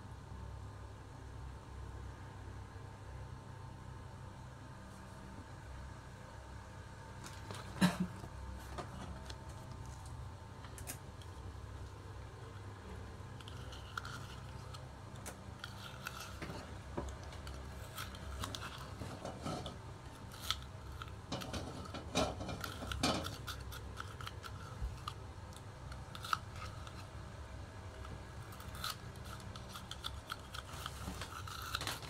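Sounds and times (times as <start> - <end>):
scissors snipping: 28.0 - 32.0
paper being handled: 28.4 - 32.0.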